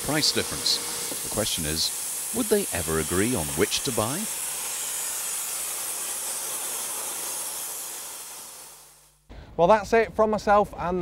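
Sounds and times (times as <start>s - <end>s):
steam locomotive hissing steam: 0.0s - 9.1s.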